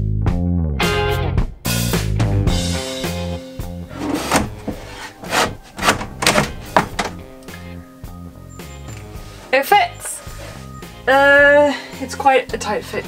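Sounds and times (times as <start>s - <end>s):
background music with bass line: 0.0s - 13.0s
wooden drawer knocking: 3.9s - 7.2s.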